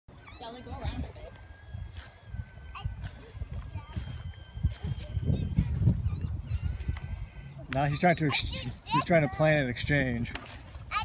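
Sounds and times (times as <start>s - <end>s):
wind buffeting microphone: 0.1s - 11.0s
faint steady high tone: 0.3s - 9.0s
young child's voice: 2.5s - 5.8s, 8.3s - 9.5s.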